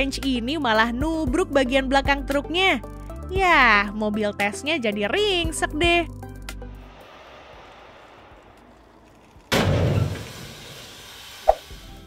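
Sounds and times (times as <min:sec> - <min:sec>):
car crashing into trailer: 0:09.5 - 0:10.9.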